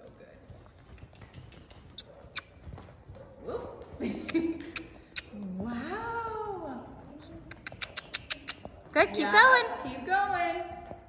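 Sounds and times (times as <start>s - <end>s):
person clucking tongue: 4.2s - 5.3s, 7.5s - 8.6s.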